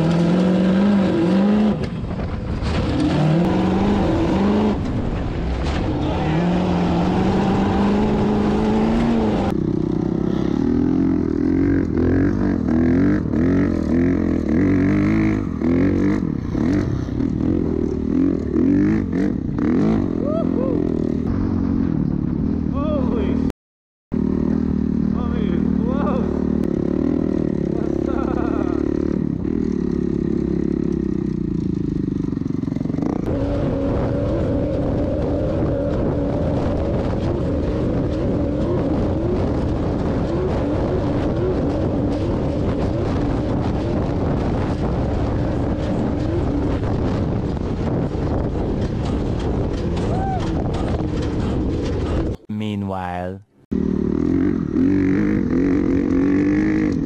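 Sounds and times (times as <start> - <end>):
off-road vehicle engine revving: 0.0 - 23.3, 24.2 - 52.5, 53.7 - 57.0.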